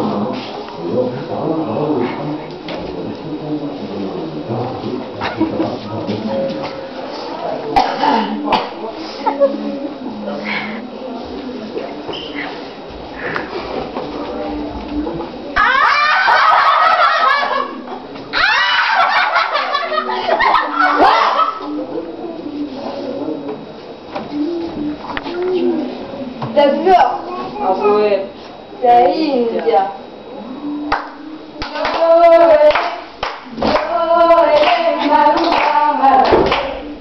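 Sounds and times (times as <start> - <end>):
children shrieking and squealing: 15.6 - 17.7, 18.3 - 19.3
hand claps: 30.9 - 32.1, 32.7 - 33.9, 34.5 - 36.8.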